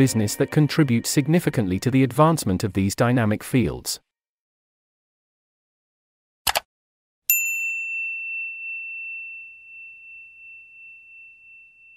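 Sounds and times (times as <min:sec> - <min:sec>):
bright bell ding: 0:07.3 - 0:11.9.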